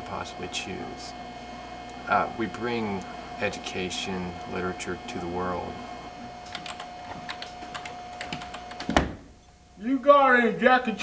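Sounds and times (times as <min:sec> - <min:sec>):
faint steady whine: 0:00.0 - 0:11.0
typing on computer keyboard: 0:06.4 - 0:09.0.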